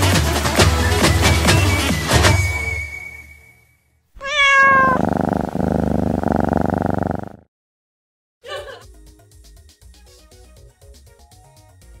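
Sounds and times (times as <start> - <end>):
cat meowing: 4.2 - 5.1
cat purring: 4.2 - 7.5.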